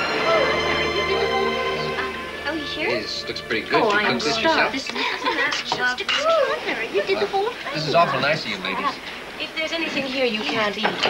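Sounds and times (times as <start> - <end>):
background music: 0.0 - 5.1
voices talking and laughing: 3.8 - 11.0.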